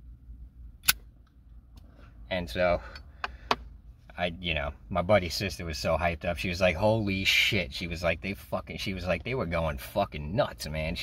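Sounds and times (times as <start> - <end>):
low steady hum: 0.0 - 11.0
sharp click: 0.8 - 1.9.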